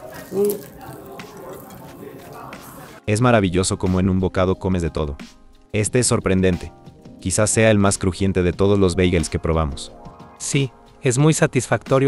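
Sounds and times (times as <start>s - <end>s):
biting and chewing bread: 0.0s - 2.9s.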